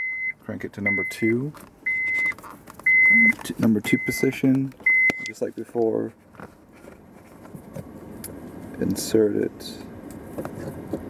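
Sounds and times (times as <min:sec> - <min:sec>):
cable handling sounds: 0:01.5 - 0:09.0.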